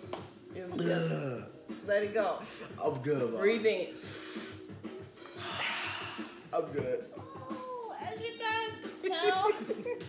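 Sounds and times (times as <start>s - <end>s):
background music: 0.0s - 10.0s
man breathing out heavily: 5.4s - 6.5s.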